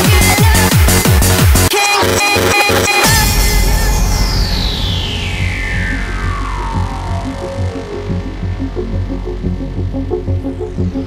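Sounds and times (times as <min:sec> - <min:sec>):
pulsing bass: 0:00.0 - 0:11.0
falling synth sweep: 0:03.0 - 0:11.0
short synth notes: 0:03.0 - 0:11.0.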